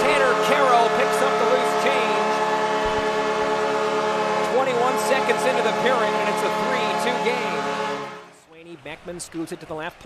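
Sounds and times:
arena goal horn chord: 0.0 - 8.5
siren-like wail: 0.1 - 8.2.

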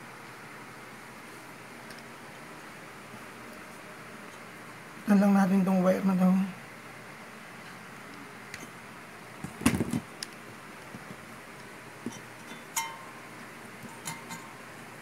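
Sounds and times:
faint steady hiss: 0.0 - 15.0.

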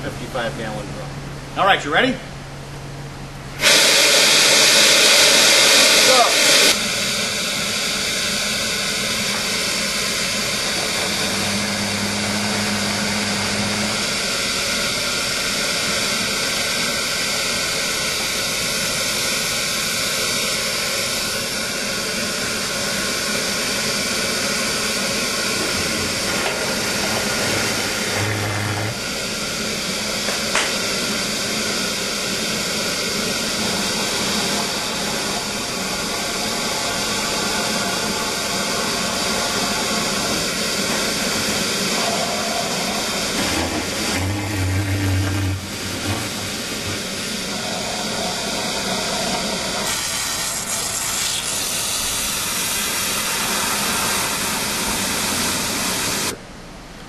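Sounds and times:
air vacuum hissing: 3.6 - 56.4.

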